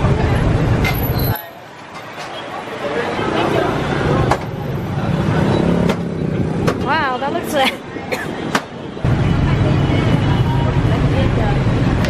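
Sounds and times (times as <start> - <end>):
vehicles passing close by: 0.0 - 12.0.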